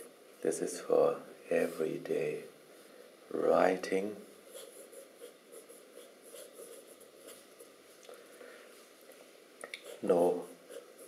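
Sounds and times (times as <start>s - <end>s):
fountain pen scratching on paper: 4.5s - 7.5s.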